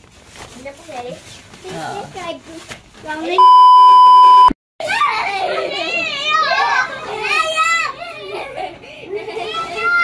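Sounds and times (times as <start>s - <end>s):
children babbling and squealing: 4.8s - 10.0s.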